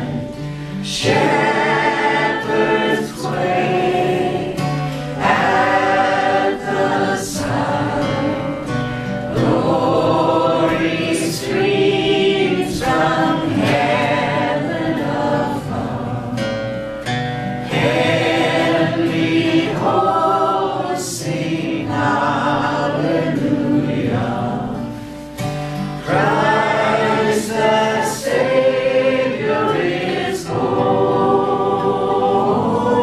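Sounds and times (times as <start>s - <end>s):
man and woman singing: 0.0s - 16.6s, 17.7s - 25.2s, 26.0s - 33.0s
strummed acoustic guitars: 0.0s - 33.0s.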